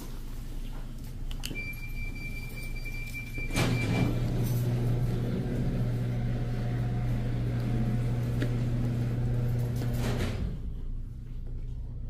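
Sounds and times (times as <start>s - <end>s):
steady electronic beep: 1.6s - 4.1s
steady low hum: 4.2s - 12.0s.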